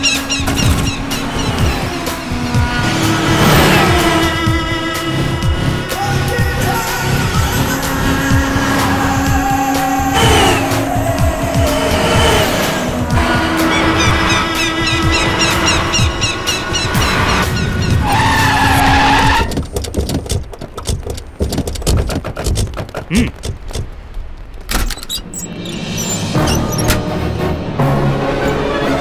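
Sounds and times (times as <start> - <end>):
dramatic film score: 0.0 - 19.7, 22.0 - 29.0
vehicle noise: 0.0 - 29.0.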